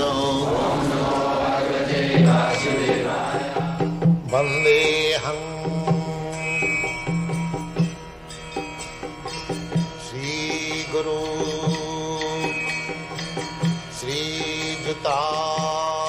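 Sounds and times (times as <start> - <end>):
percussion strokes: 0.0 - 16.0
instrumental music with held low note: 2.0 - 16.0.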